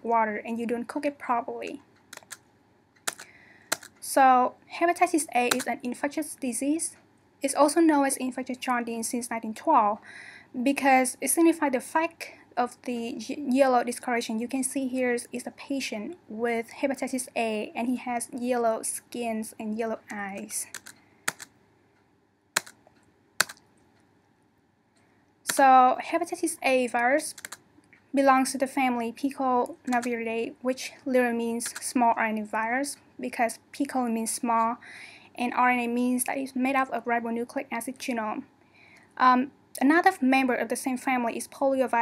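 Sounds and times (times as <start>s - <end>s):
computer key clicks: 2.1s - 2.4s, 3.1s - 4.0s, 20.6s - 21.6s, 22.6s - 23.6s, 27.3s - 27.6s.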